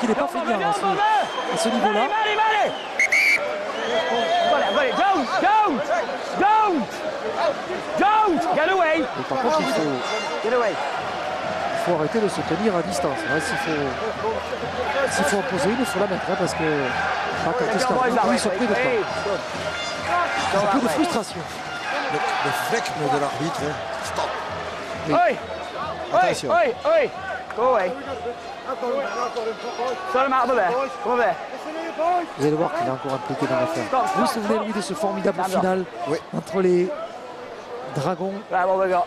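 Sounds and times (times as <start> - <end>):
men talking: 0.0 - 39.0.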